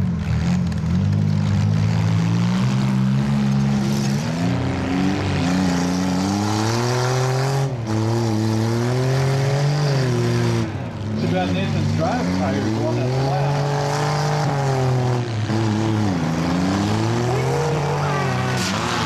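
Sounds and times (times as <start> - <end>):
car engines revving hard: 0.0 - 19.0.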